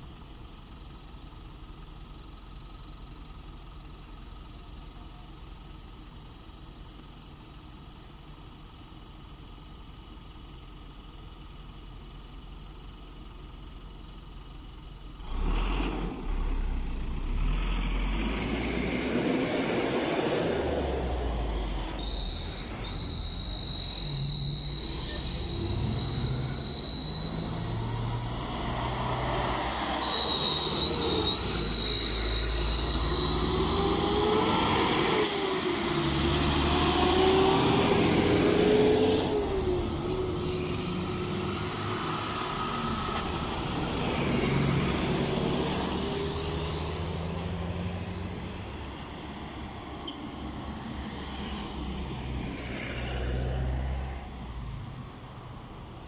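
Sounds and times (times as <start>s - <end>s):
engine whine: 13.5s - 56.0s
cars and trucks driving past: 15.2s - 56.0s.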